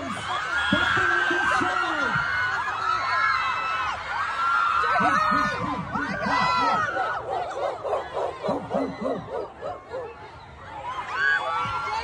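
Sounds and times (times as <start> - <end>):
voices making bark-like syllables: 4.8 - 10.3.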